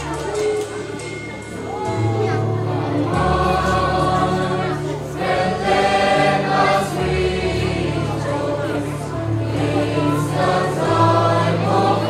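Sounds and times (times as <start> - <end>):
children's choir singing: 0.0 - 12.0
steady low accompaniment: 0.0 - 12.0.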